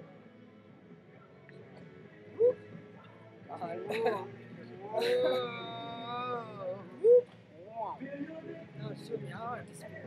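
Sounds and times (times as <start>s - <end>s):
faint music: 0.0s - 10.0s
people laughing and calling out: 3.6s - 7.3s.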